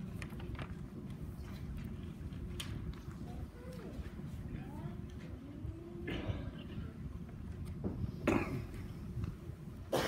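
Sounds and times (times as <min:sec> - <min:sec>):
person coughing: 0:06.0 - 0:06.6, 0:08.2 - 0:08.8.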